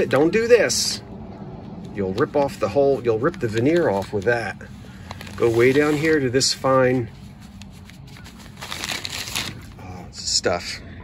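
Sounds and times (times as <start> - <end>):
plastic packaging crinkling: 3.1 - 9.8.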